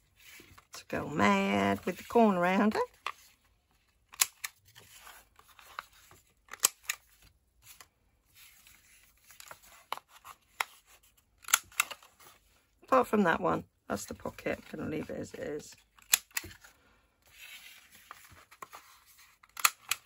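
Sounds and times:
paper rustling: 0:04.6 - 0:12.6, 0:16.4 - 0:20.0.

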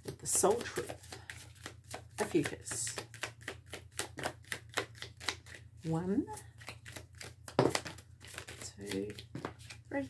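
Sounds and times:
cards being shuffled: 0:00.0 - 0:09.9.

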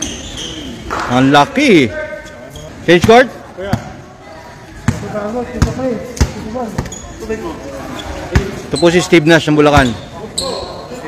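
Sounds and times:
voices talking: 0:00.0 - 0:11.0
basketball bouncing on concrete: 0:04.8 - 0:06.9.

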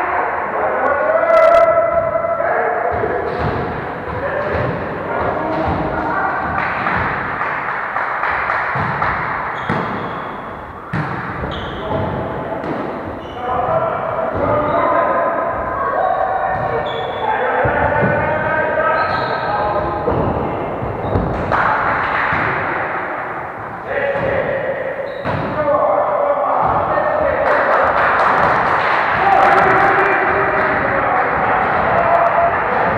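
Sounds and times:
players calling out: 0:00.0 - 0:07.8, 0:08.7 - 0:32.9
volleyball thumps on wooden floor: 0:02.9 - 0:07.4, 0:08.7 - 0:10.2, 0:20.1 - 0:22.8.

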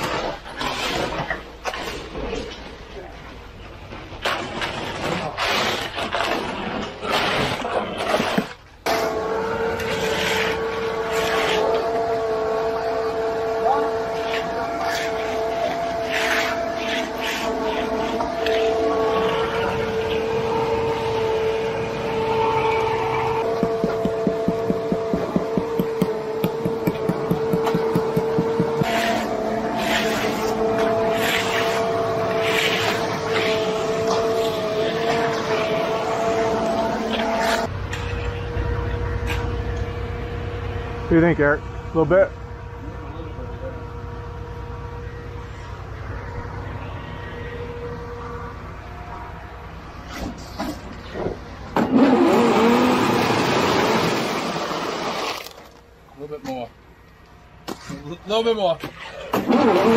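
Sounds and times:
rake scraping wet concrete: 0:00.0 - 0:02.6, 0:04.1 - 0:39.8, 0:49.9 - 0:56.6
conveyor truck engine droning: 0:10.5 - 0:51.8.

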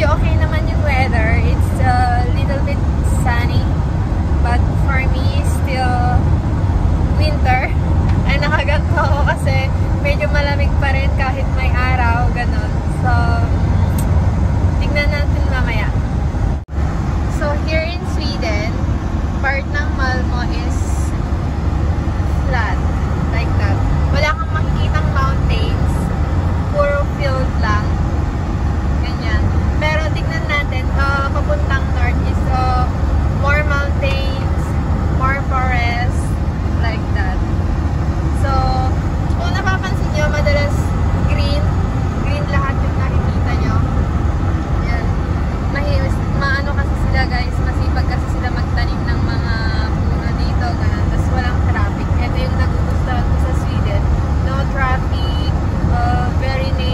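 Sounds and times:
road and engine rumble: 0:00.0 - 0:56.9
person talking: 0:07.2 - 0:13.5, 0:17.3 - 0:18.8, 0:19.4 - 0:21.2, 0:22.3 - 0:26.0, 0:26.7 - 0:27.9, 0:29.0 - 0:34.6, 0:35.2 - 0:37.4, 0:38.4 - 0:41.7, 0:44.8 - 0:56.9.

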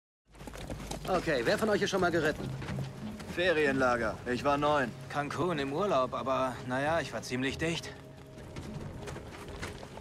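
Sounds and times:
horse hooves on hard dirt: 0:00.3 - 0:10.0
quiet music score: 0:01.0 - 0:10.0.

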